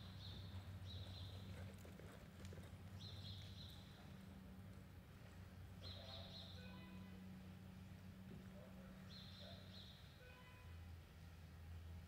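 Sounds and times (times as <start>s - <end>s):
horse hoofbeats on dirt: 0.0s - 5.4s.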